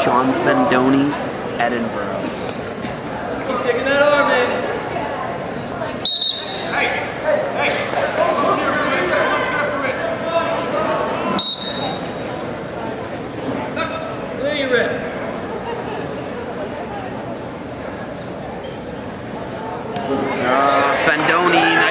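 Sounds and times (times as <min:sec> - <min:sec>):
referee's whistle blasts: 0:06.0 - 0:06.8, 0:11.3 - 0:12.2
crowd and coaches shouting: 0:06.3 - 0:12.1, 0:20.2 - 0:21.9.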